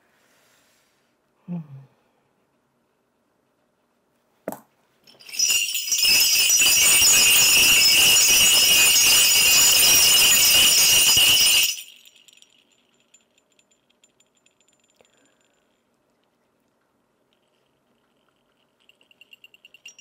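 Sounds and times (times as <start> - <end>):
brass bell rattle shaken: 5.1 - 15.8, 17.4 - 20.0.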